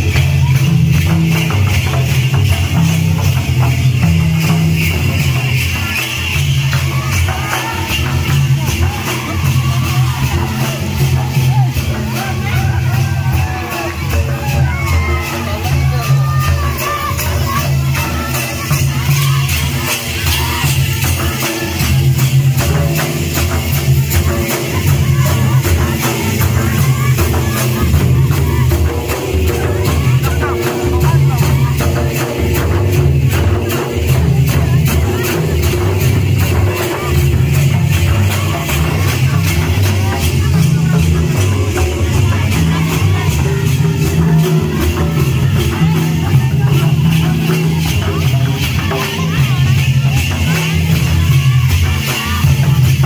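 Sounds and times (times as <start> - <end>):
drums beating: 0.0 - 53.0
jingling rattling percussion: 0.0 - 53.0.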